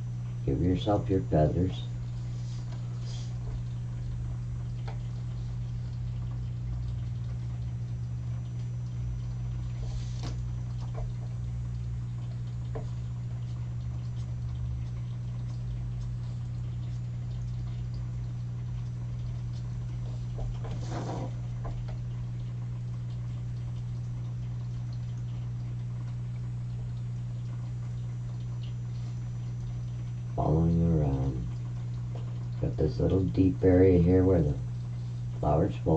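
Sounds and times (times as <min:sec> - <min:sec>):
steady low hum: 0:00.0 - 0:35.9.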